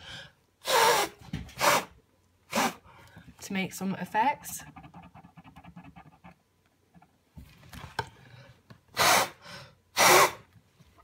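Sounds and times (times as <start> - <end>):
person blowing hard: 0.0 - 1.9, 2.5 - 2.8, 8.9 - 10.5.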